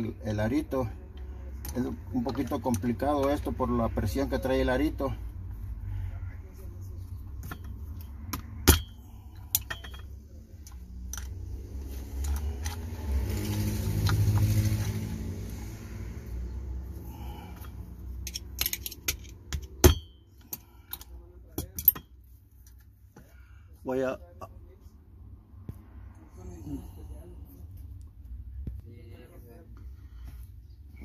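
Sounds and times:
pliers clicking on metal ring: 0:18.2 - 0:22.0.

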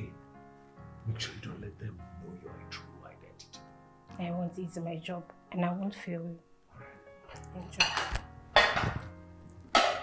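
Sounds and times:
soft background music: 0:00.0 - 0:10.0
plates and cutlery clinking: 0:07.6 - 0:10.0.

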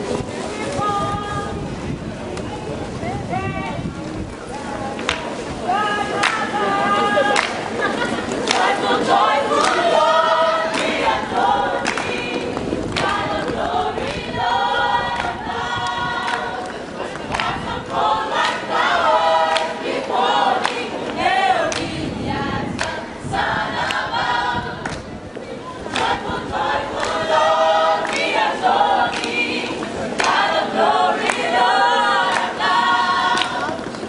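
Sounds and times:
gospel choir singing: 0:05.7 - 0:34.0.

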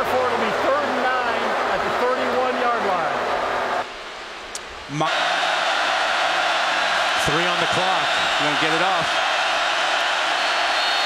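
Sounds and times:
stadium crowd roaring: 0:00.0 - 0:03.9, 0:04.9 - 0:11.0.

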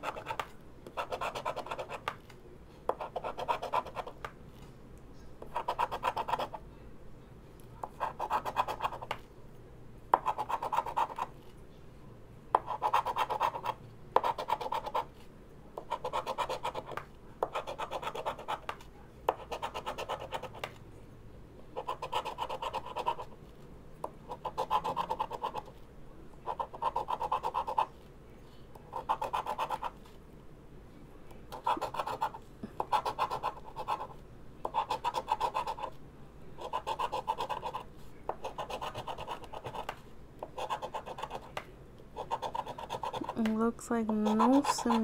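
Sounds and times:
scraping scratch-off ticket: 0:42.2 - 0:45.0.

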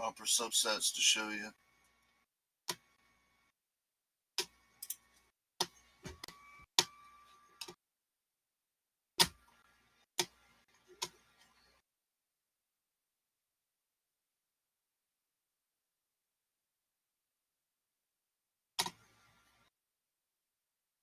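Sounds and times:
computer mouse clicks: 0:02.7 - 0:02.9, 0:04.4 - 0:05.8, 0:10.2 - 0:11.6, 0:18.8 - 0:19.3.

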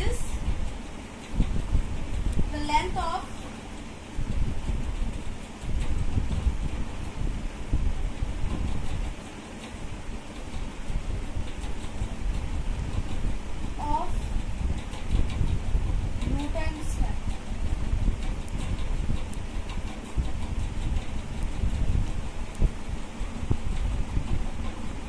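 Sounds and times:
low rumbling noise: 0:00.0 - 0:25.0.

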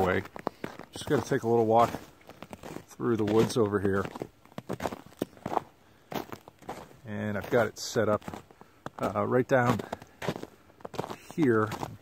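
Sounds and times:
footsteps on snow: 0:00.0 - 0:12.0.

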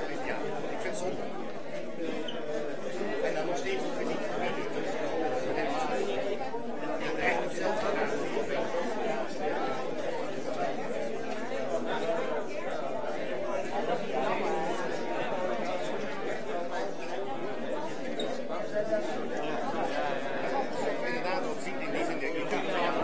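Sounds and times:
crowd chatter in a hall: 0:00.0 - 0:23.0.

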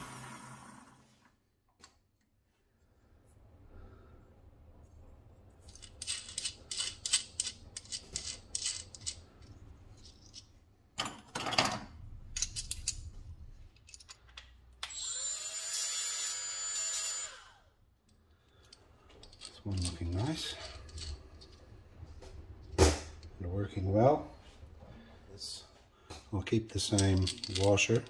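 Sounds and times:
small metal parts clicking: 0:05.7 - 0:10.5, 0:12.3 - 0:15.0, 0:18.0 - 0:21.8, 0:26.8 - 0:28.0
power tool whining: 0:14.9 - 0:17.6
metal rustling scrape: 0:18.6 - 0:24.7, 0:26.8 - 0:28.0.

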